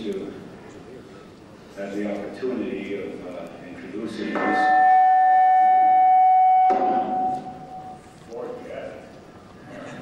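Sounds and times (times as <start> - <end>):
microphone feedback whistle: 4.4 - 8.0.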